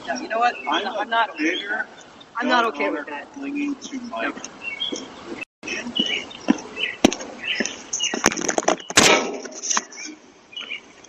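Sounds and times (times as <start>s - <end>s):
knocks and clatters on camera: 7.0s - 9.8s.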